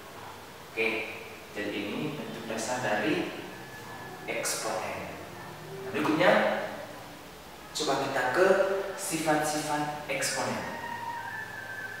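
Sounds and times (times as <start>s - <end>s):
man speaking: 0.8s - 7.0s, 7.7s - 10.8s.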